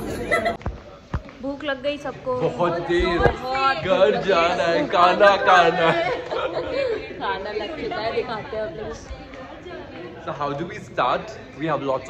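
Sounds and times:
people talking: 0.0s - 0.7s.

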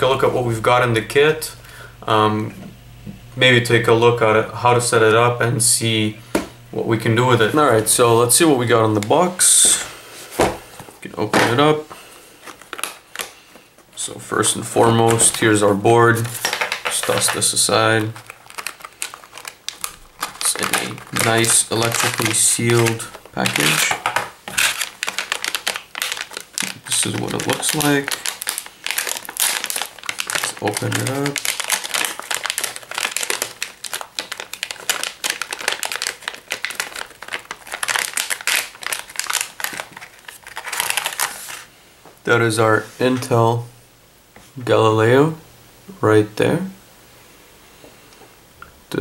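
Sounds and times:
plastic bag crinkling: 11.5s - 41.7s.

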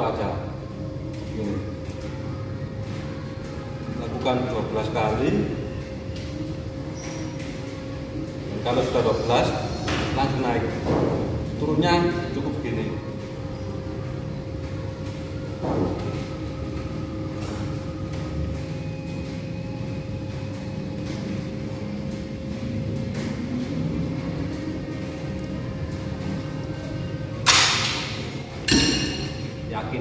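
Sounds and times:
faint background music: 0.0s - 30.0s.

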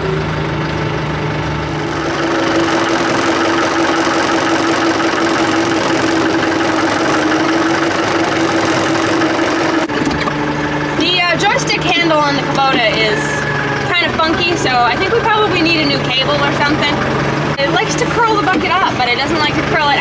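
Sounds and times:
steady high whine: 0.0s - 19.8s
tractor diesel engine running: 0.0s - 20.0s.

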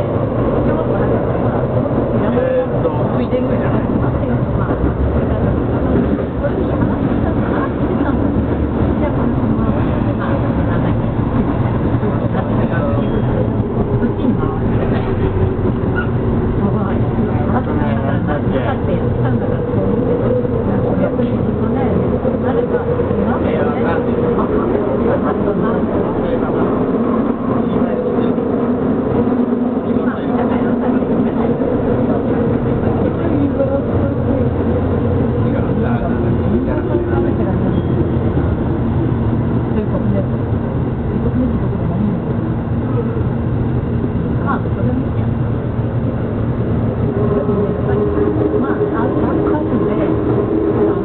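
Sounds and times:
murmur of voices: 0.0s - 51.0s
train wheels rumbling on track: 0.0s - 51.0s.

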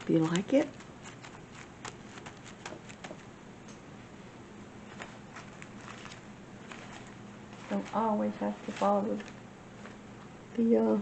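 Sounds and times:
paper rustling: 0.0s - 3.3s, 4.8s - 10.1s.

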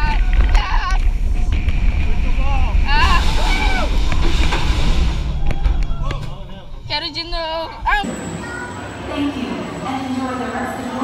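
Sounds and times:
wind rush on microphone: 0.0s - 6.2s
riders screaming: 2.8s - 4.0s.

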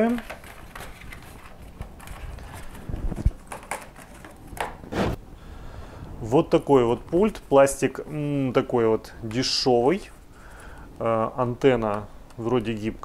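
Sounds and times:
cardboard rustling: 0.0s - 5.2s.

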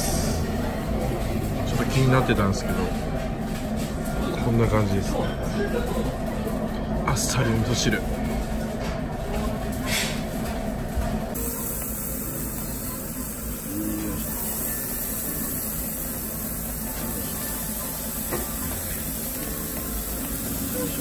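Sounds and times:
beef sizzling on a grill: 11.4s - 21.0s.

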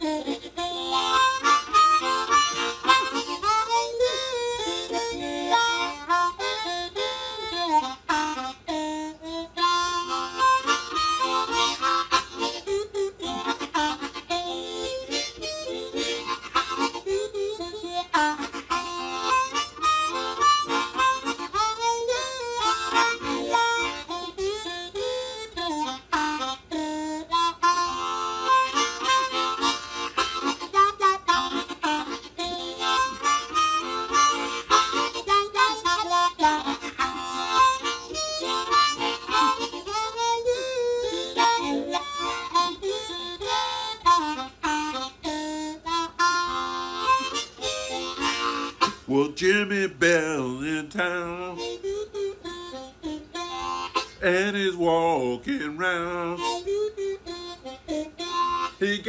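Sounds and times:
blues harmonica playing: 0.0s - 59.0s.

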